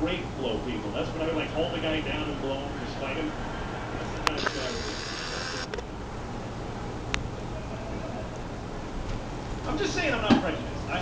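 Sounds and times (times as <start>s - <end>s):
camcorder zoom motor whirring: 4.3s - 5.8s
zoom motor stopping click: 4.4s - 5.8s.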